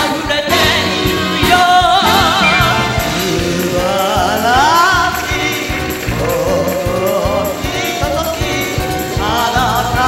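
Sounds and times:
live band with drum beat: 0.0s - 10.0s.

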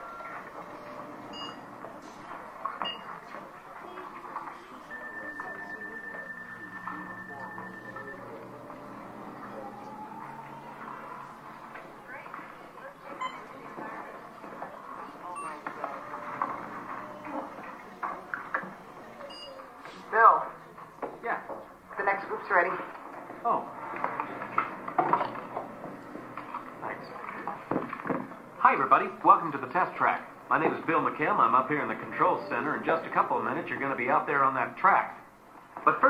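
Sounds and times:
indistinct background voices: 0.0s - 36.0s
low background noise: 0.0s - 36.0s.

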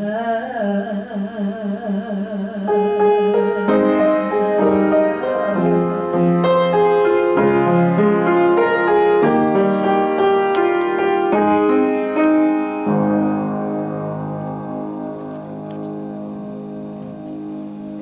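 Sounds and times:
woman singing with vibrato: 0.0s - 6.2s
piano chords and melody: 2.7s - 18.0s.

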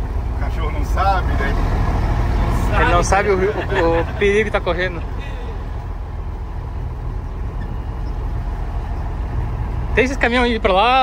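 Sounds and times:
truck diesel engine drone: 0.0s - 11.0s.

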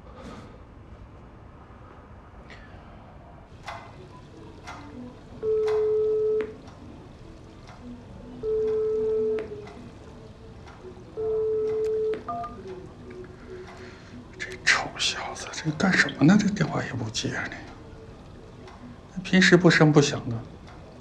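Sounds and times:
long steady beep: 5.4s - 6.5s, 11.2s - 12.6s.

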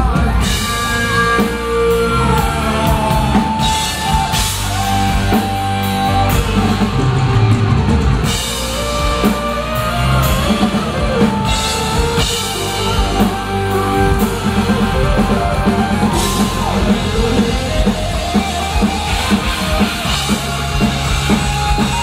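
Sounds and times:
heavy metal band playing: 0.0s - 22.0s.

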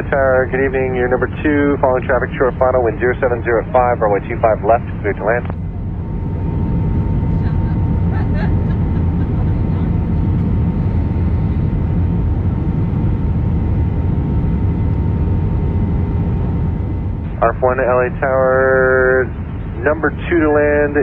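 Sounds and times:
faint voices: 0.0s - 10.4s, 17.3s - 21.0s
airliner engine rumble: 0.0s - 21.0s
faint steady whine: 0.0s - 21.0s.

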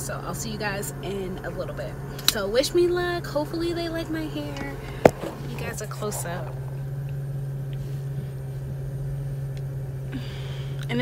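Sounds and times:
car engine low hum: 0.0s - 11.0s.

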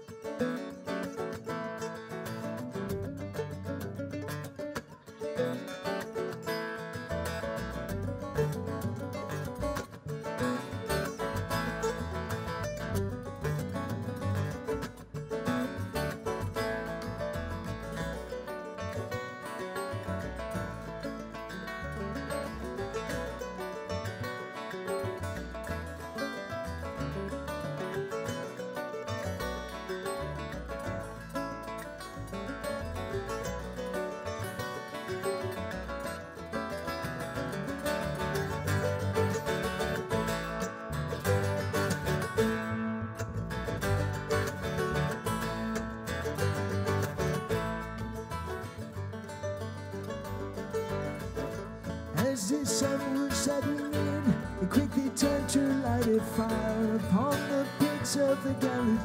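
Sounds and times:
bluegrass string band playing: 0.0s - 59.0s.

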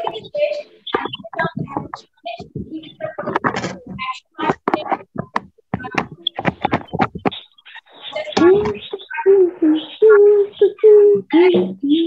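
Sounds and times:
woman speaking: 0.0s - 7.4s, 8.0s - 12.0s.

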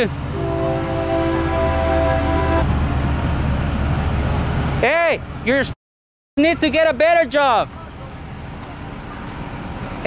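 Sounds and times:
horn sounding chord: 0.3s - 2.7s.

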